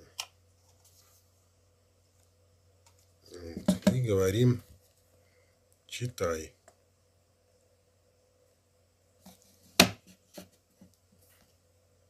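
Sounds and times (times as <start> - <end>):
sharp knocks and clicks: 3.6 - 4.0.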